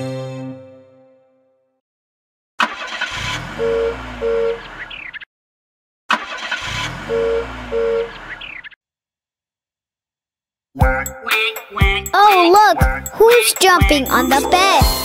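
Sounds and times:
cartoon car engine revving: 0:02.6 - 0:05.1, 0:06.1 - 0:08.6.

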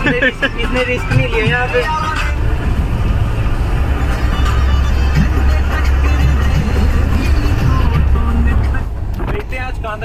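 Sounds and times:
off-road vehicle engine rumble: 0:00.0 - 0:10.0.

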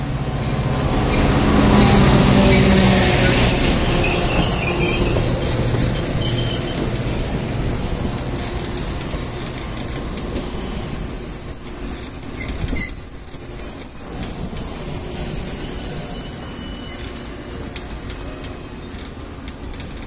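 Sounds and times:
rumble of train cars: 0:00.0 - 0:20.0
train wheels squealing: 0:00.4 - 0:19.0.

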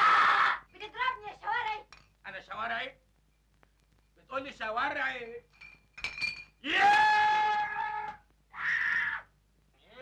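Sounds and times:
man yelling: 0:06.6 - 0:08.2.

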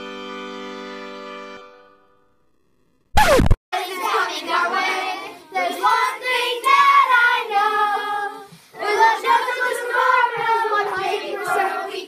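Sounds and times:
children singing: 0:03.8 - 0:12.0.

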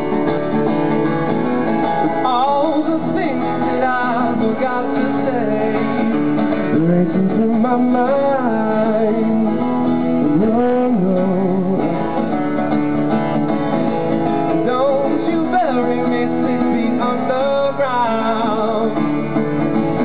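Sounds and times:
strummed acoustic guitar: 0:00.0 - 0:20.0
man singing: 0:02.0 - 0:12.4, 0:14.4 - 0:19.3.

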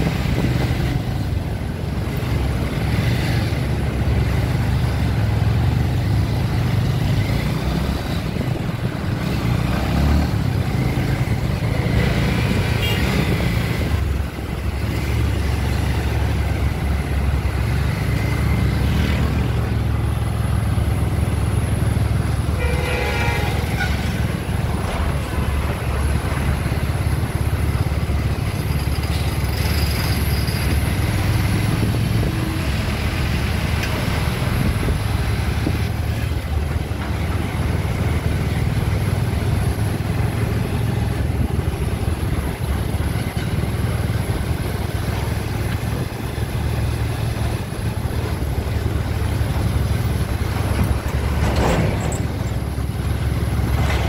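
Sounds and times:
road and wind noise: 0:00.0 - 0:54.0
vehicle engine rumble: 0:00.0 - 0:54.0
vehicle horn: 0:12.7 - 0:13.4, 0:22.4 - 0:24.3.

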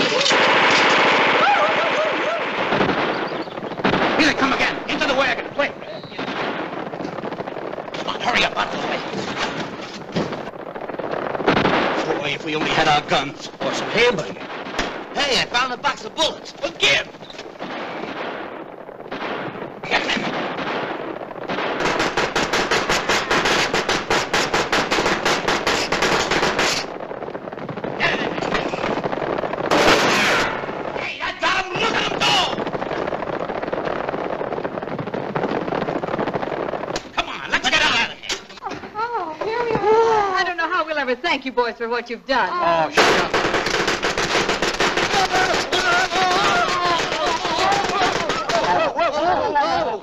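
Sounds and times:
machine-gun fire: 0:00.0 - 0:38.1, 0:43.0 - 0:49.0.

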